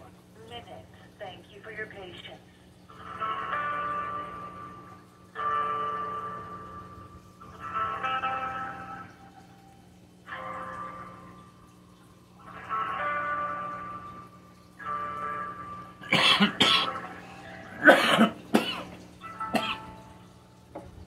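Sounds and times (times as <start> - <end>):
hold music through phone speaker: 2.9 - 11.6, 12.4 - 17.8, 19.2 - 20.3.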